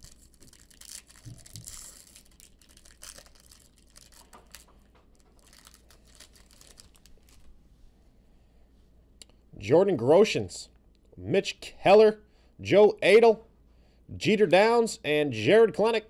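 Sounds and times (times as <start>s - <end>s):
wrapper crinkling and tearing: 0.0s - 7.6s.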